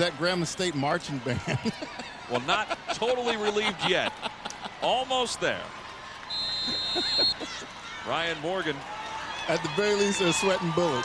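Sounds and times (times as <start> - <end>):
faint crowd voices: 0.0 - 11.0
whistle blown: 6.3 - 7.4.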